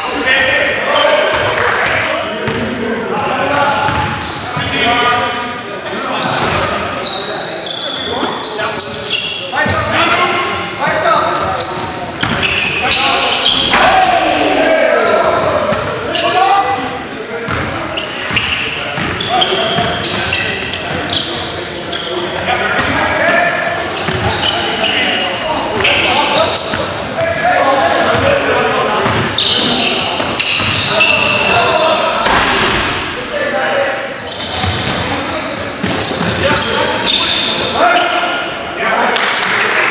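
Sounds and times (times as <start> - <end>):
players' voices echoing: 0.0 - 39.9
ball bouncing on hardwood court: 3.6 - 4.7, 12.2 - 12.5.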